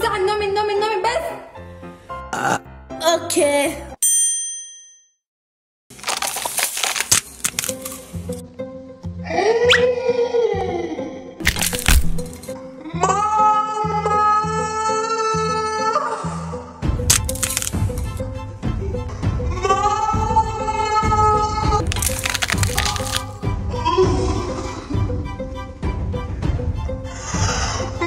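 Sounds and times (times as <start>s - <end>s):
background music: 0.0s - 4.0s, 6.0s - 28.0s
dry noodles crunching: 5.9s - 8.4s, 11.4s - 12.5s, 17.1s - 18.2s, 21.8s - 23.4s.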